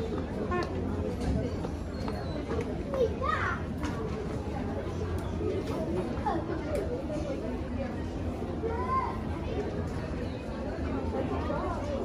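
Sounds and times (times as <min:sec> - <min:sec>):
murmur of shoppers talking: 0:00.0 - 0:12.0.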